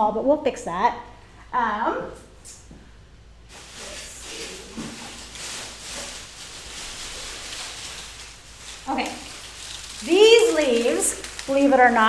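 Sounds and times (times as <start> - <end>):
leafy branches rustling: 3.4 - 12.0.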